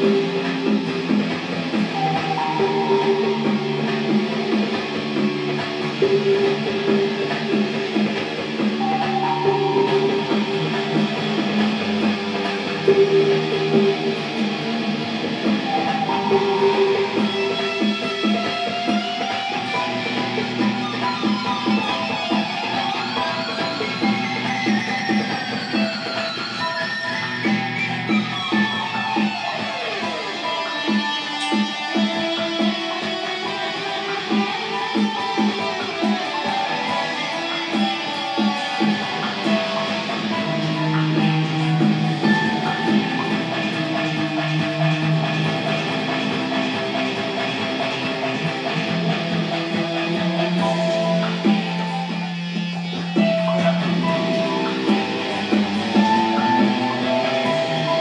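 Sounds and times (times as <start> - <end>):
electric guitar: 0.0 - 58.0
electronic beat: 0.0 - 58.0.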